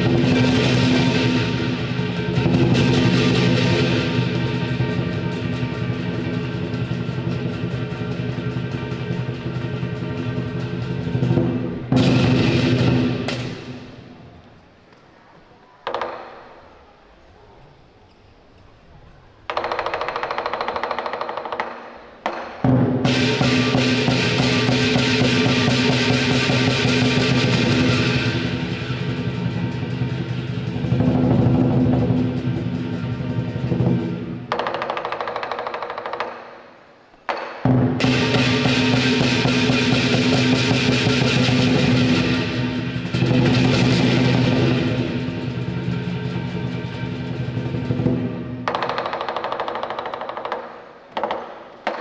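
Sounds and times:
drum strikes: 0:00.0 - 0:14.2, 0:19.5 - 0:36.4, 0:37.3 - 0:52.0
cymbals crashing: 0:00.0 - 0:14.3, 0:22.5 - 0:34.5, 0:37.6 - 0:48.8
lion dance percussion roll: 0:00.0 - 0:14.4, 0:19.5 - 0:36.4, 0:37.3 - 0:52.0.

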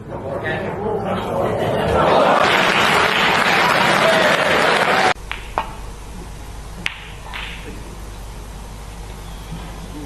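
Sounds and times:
crowd applauding: 0:02.1 - 0:05.2
cue tip striking cue ball: 0:05.3 - 0:05.8, 0:06.8 - 0:07.7.

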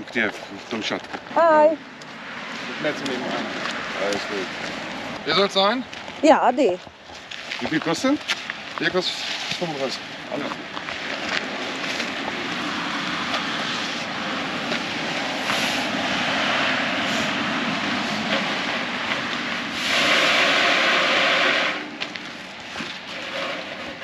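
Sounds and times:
tree branches scraping metal netting: 0:07.1 - 0:12.7, 0:19.6 - 0:24.0.

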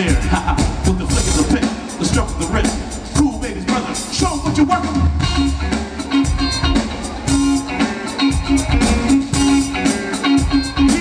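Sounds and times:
electric guitar funk strumming: 0:00.0 - 0:11.0.

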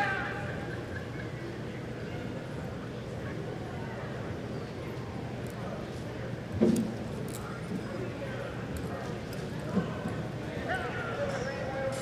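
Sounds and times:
arena background noise: 0:00.0 - 0:12.0.

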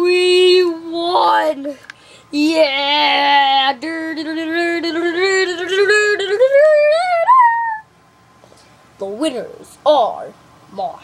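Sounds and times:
child singing wordless tune: 0:00.0 - 0:01.8, 0:02.4 - 0:07.8.

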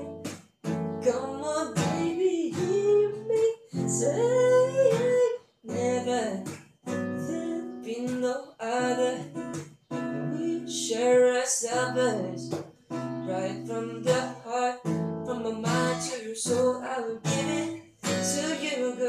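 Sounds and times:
man singing: 0:00.0 - 0:06.5, 0:07.2 - 0:12.6, 0:13.2 - 0:19.0
strummed acoustic guitar: 0:00.0 - 0:19.0.

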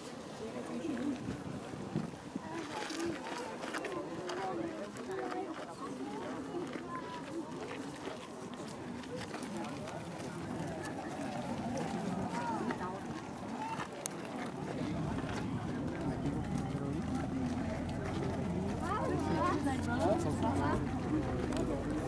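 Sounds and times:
indistinct voices talking: 0:14.5 - 0:22.0.

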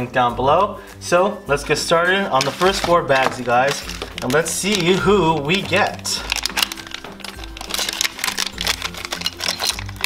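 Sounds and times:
background music with bass: 0:00.0 - 0:10.0
foil bag crinkling as torn open: 0:02.4 - 0:10.0.

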